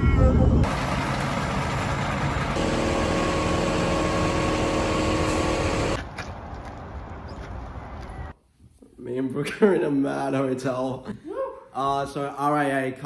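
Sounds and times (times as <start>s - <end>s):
vehicle engine running: 0.6s - 6.0s
steady hum of even tones: 2.5s - 6.0s.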